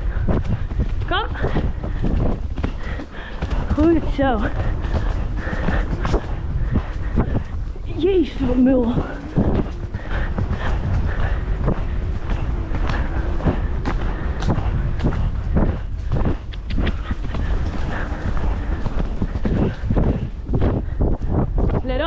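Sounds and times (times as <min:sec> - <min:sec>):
horse hoofbeats cantering on dirt: 0:00.0 - 0:22.0
wind rumble on microphone: 0:00.0 - 0:22.0.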